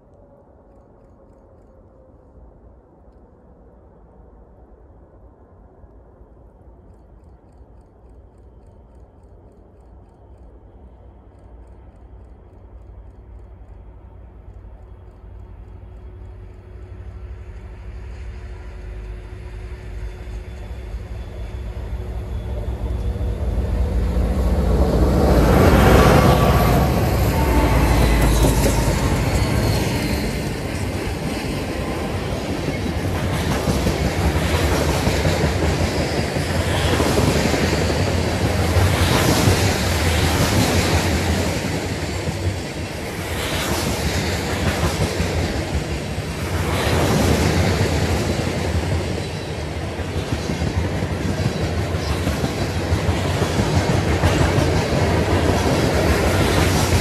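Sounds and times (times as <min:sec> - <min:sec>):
train wheels clickety-clack: 0:06.8 - 0:57.0
diesel locomotive engine rumble: 0:09.9 - 0:57.0.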